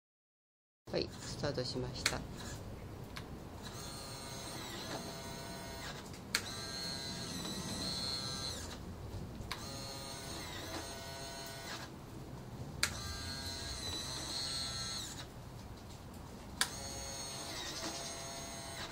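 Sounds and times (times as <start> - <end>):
small geared motor whining: 3.6 - 8.8, 9.5 - 11.9, 12.8 - 15.3, 16.6 - 18.9.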